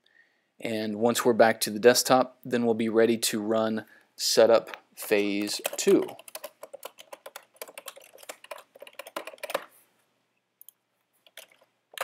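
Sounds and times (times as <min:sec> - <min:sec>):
typing on computer keyboard: 0:05.0 - 0:09.7, 0:10.6 - 0:12.0.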